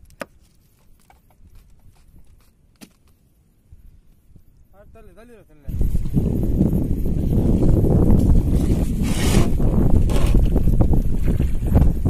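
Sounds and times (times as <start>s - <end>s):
wind rumble on microphone: 3.6s - 12.0s
water splashing and streaming: 8.1s - 12.0s.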